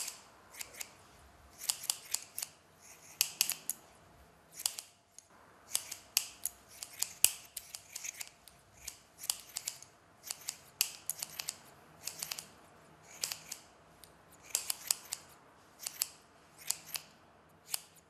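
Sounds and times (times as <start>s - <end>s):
scissors snipping hair: 0.0s - 3.8s, 4.5s - 18.0s.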